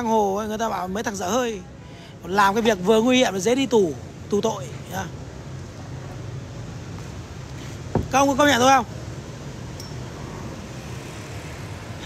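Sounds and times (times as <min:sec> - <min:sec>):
motor traffic rumble: 0:00.0 - 0:12.0.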